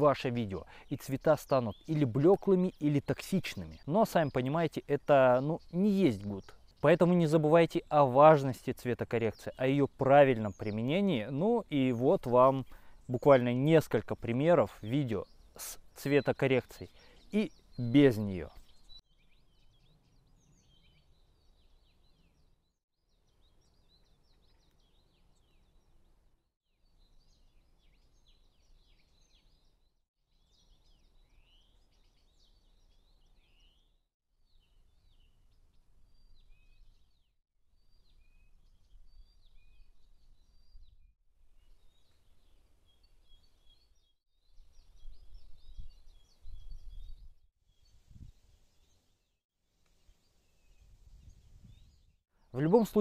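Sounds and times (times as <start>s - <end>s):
songbirds chirping and trilling: 0.0s - 53.0s
wind rumble on microphone: 44.7s - 48.6s, 50.7s - 52.1s.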